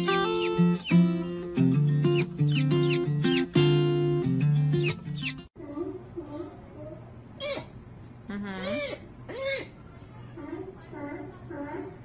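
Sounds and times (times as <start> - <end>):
baby sea otter squealing: 0.0 - 1.2, 2.1 - 3.6, 4.8 - 5.4, 7.4 - 7.8, 8.6 - 9.8.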